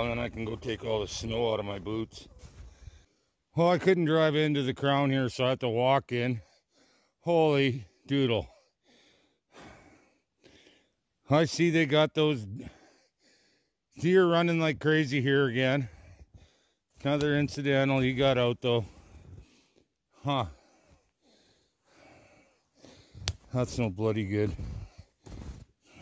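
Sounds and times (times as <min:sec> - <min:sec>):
man breathing out heavily: 0:02.4 - 0:03.3, 0:08.6 - 0:11.0, 0:12.6 - 0:13.8, 0:15.9 - 0:16.9, 0:18.8 - 0:23.4, 0:24.5 - 0:26.0
faint breath through nose: 0:20.6 - 0:23.3.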